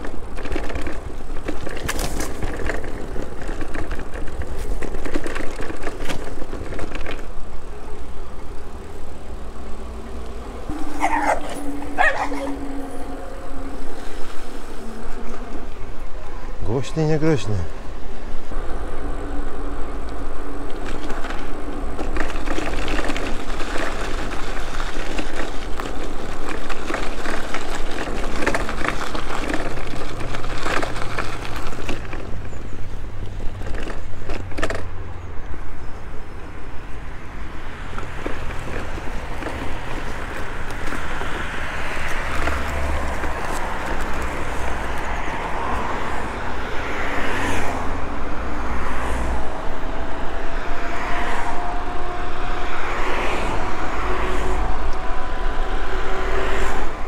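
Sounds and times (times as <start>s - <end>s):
bike frame rattling and knocking: 0.0s - 8.1s, 20.5s - 35.1s
bike tyres rolling: 0.0s - 57.0s
road traffic: 0.0s - 57.0s.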